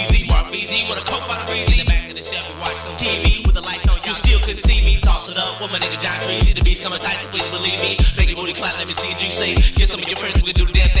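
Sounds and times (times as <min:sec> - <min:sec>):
hi-hats: 0:00.0 - 0:11.0
rapping over a beat: 0:00.0 - 0:11.0
heavy bass kicks: 0:00.1 - 0:00.5, 0:01.7 - 0:02.1, 0:03.3 - 0:05.2, 0:06.4 - 0:06.8, 0:08.0 - 0:08.4, 0:09.6 - 0:11.0.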